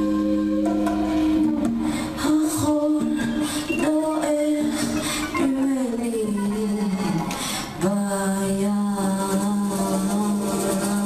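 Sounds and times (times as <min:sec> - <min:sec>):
live band holding final chord: 0:00.0 - 0:02.5.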